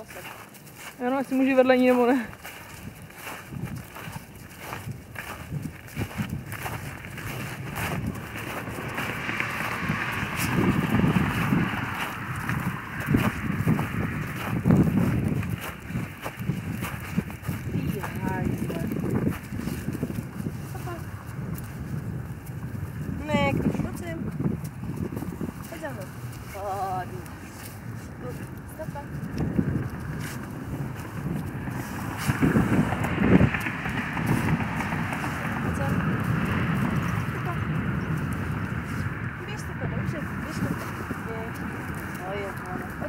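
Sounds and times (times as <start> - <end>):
footsteps through wet grass and snow: 0.0 - 43.0
wind buffeting microphone: 0.0 - 43.0.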